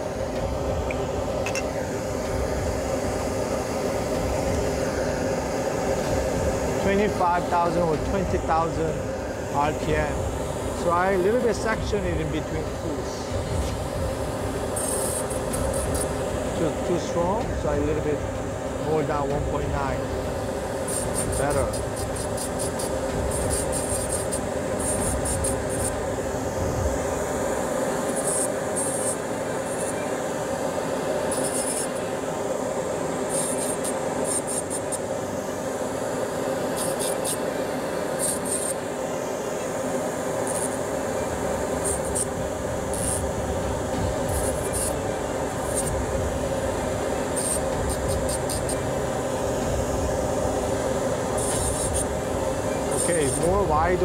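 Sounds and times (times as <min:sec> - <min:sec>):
dental handpiece grinding acrylic: 0:14.7 - 0:16.2, 0:20.8 - 0:26.0, 0:28.0 - 0:30.0, 0:31.3 - 0:32.0, 0:33.3 - 0:35.0, 0:36.7 - 0:37.4, 0:38.2 - 0:38.8, 0:40.4 - 0:40.8, 0:41.8 - 0:43.3, 0:44.3 - 0:45.0, 0:45.6 - 0:46.0, 0:47.3 - 0:48.8, 0:51.3 - 0:52.1, 0:52.9 - 0:53.6.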